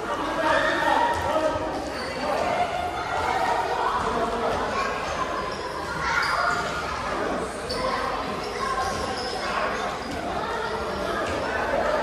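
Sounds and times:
sneakers squeaking: 1.1 - 2.6, 5.0 - 12.0.

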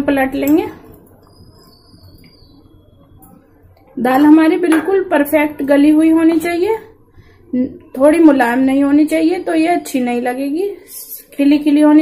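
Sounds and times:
faint high whine: 0.8 - 4.3.

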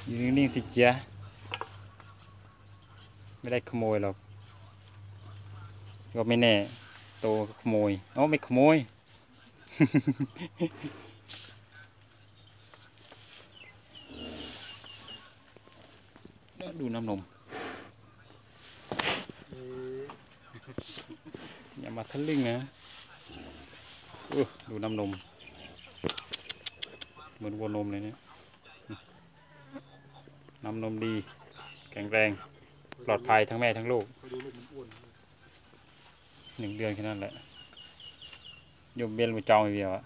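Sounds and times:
man talking: 0.0 - 10.7, 16.6 - 18.8, 19.4 - 25.4, 26.0 - 35.6, 36.4 - 37.6, 38.9 - 40.0
small birds chirping: 0.0 - 40.0.

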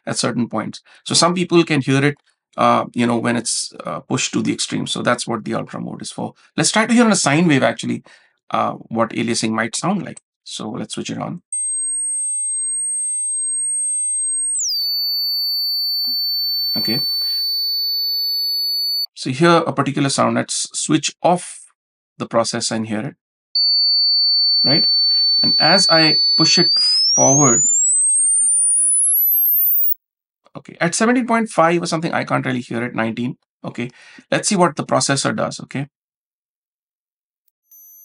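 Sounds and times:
sine test tone gliding down: 13.2 - 19.1, 23.6 - 30.0, 37.7 - 38.0.

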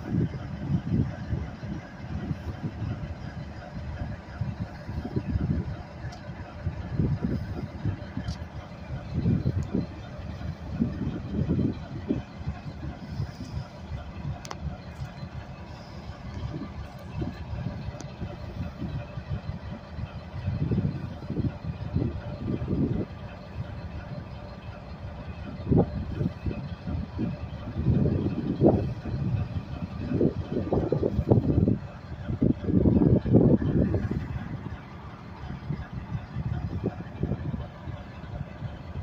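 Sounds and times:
diesel locomotive rumbling: 0.0 - 39.0.

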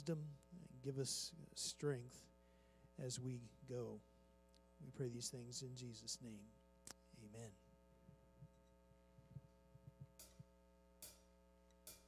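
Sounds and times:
electrical hum: 0.0 - 12.0
faint low thuds: 8.0 - 10.6.

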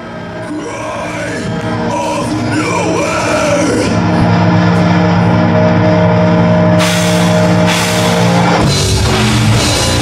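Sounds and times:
distorted guitar chord ringing: 0.0 - 10.0
drums: 0.0 - 10.0.

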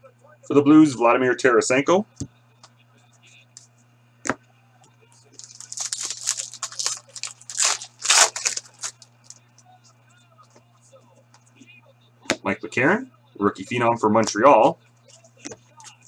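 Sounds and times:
foil wrapper tearing and crinkling: 5.4 - 9.4.

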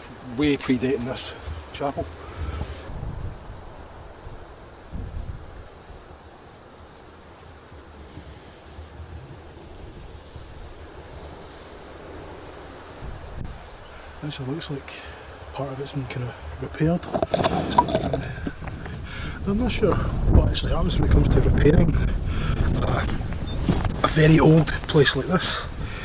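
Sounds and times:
outdoor hiss: 0.0 - 26.0
wind buffeting microphone: 0.0 - 26.0.

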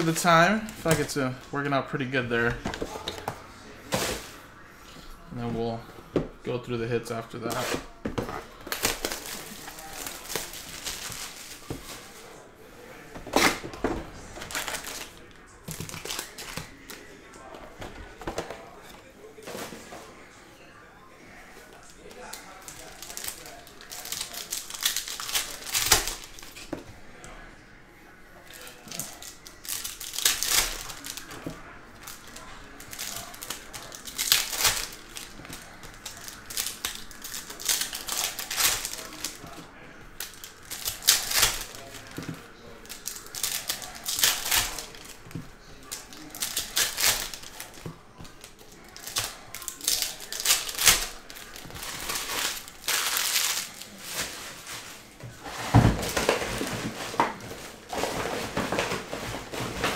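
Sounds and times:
foil packs tearing and crinkling: 7.4 - 12.2, 14.4 - 17.0, 22.1 - 26.6, 28.6 - 39.6, 40.2 - 42.2, 42.8 - 55.1.

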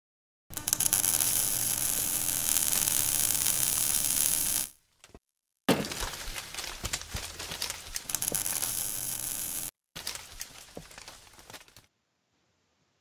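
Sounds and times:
crackling static noise: 0.5 - 4.8, 7.6 - 9.7.

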